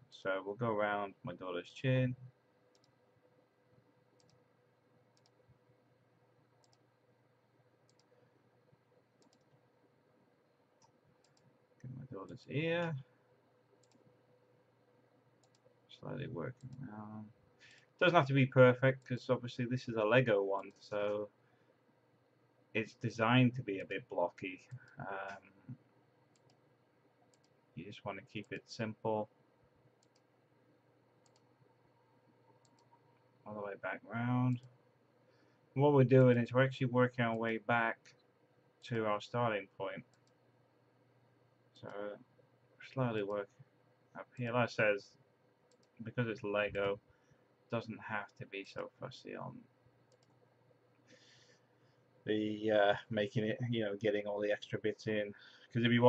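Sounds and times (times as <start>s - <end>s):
faint steady hum: 0.0s - 56.0s
faint computer mouse clicks: 2.7s - 3.0s, 4.2s - 4.4s, 5.2s - 5.4s, 6.6s - 6.9s, 7.9s - 8.2s, 9.2s - 9.6s, 10.8s - 11.9s, 13.8s - 14.2s, 15.4s - 15.7s, 26.3s - 26.7s, 27.3s - 27.6s, 30.0s - 30.3s, 31.2s - 31.5s, 32.5s - 33.3s, 45.7s - 46.0s, 50.1s - 51.4s.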